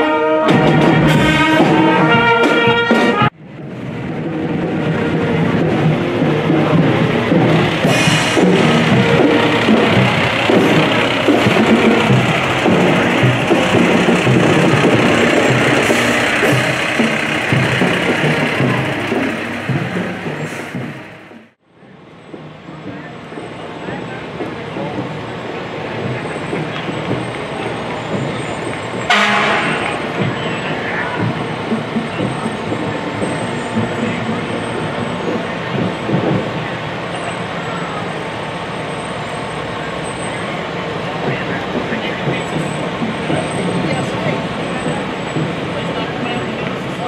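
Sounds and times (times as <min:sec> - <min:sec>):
parade music: 0:00.0 - 0:03.4, 0:04.4 - 0:21.6, 0:24.0 - 0:38.2
street noise: 0:00.0 - 0:47.0
voices: 0:04.8 - 0:21.1, 0:21.8 - 0:47.0.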